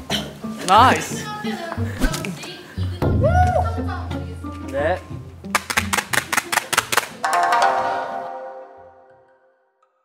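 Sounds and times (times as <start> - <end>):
background music: 0.0 - 10.0
rapid sharp percussive clicks: 5.5 - 7.2.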